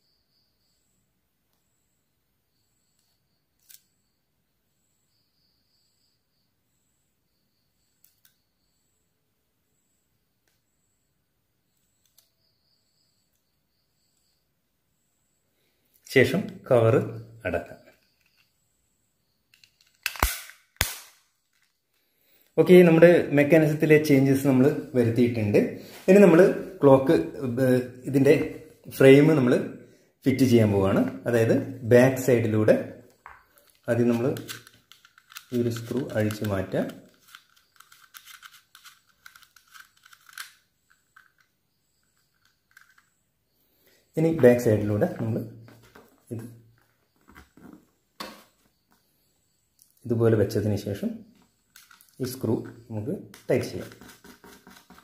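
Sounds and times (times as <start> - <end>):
small plastic clicks and scratches: 3.0 - 3.9, 11.8 - 12.3, 33.6 - 43.1, 51.7 - 52.2, 53.3 - 55.0.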